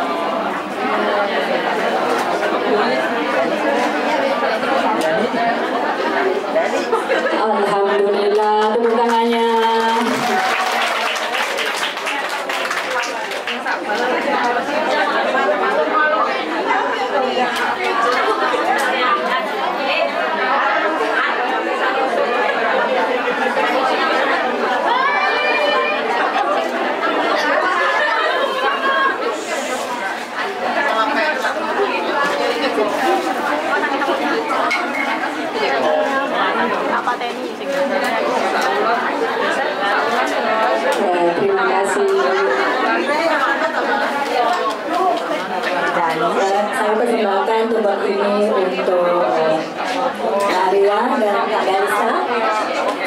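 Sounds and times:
crowd chatter in a hall: 0.0 - 53.0.

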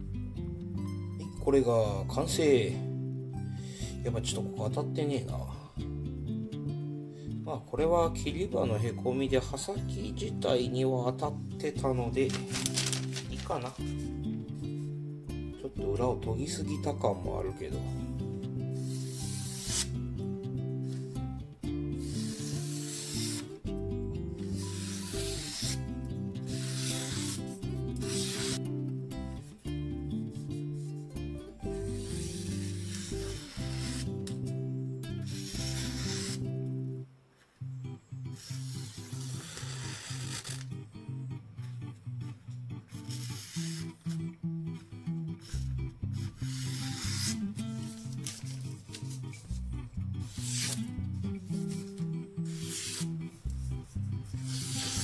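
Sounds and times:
background music: 0.0 - 37.1, 37.8 - 55.0
knife slicing through newspaper: 12.2 - 13.8, 18.8 - 20.0, 22.0 - 23.6, 24.4 - 28.6, 31.7 - 34.4, 35.2 - 36.5, 38.4 - 40.7, 43.0 - 44.2, 45.5 - 49.4, 50.2 - 50.9, 51.5 - 53.2, 54.4 - 55.0.

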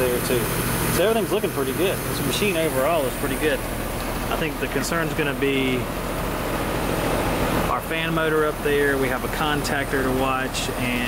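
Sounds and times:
compressor low hum: 0.0 - 11.0
condenser fan blowing air: 0.0 - 11.0.

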